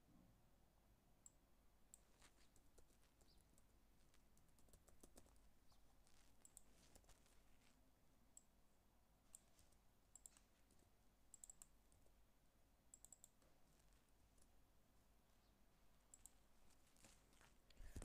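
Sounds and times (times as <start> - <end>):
computer keyboard typing: 2.0 - 7.2, 10.2 - 10.4, 11.3 - 12.0, 12.9 - 13.5.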